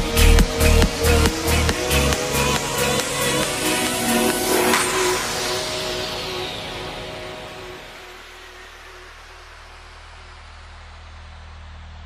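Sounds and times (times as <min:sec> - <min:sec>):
low bass drone: 0:00.0 - 0:12.0
trance music: 0:00.0 - 0:12.0.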